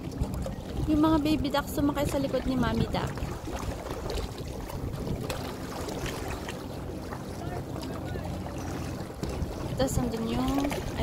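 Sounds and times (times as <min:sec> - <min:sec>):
small waves lapping: 0:00.0 - 0:11.0
wind on microphone: 0:00.0 - 0:11.0.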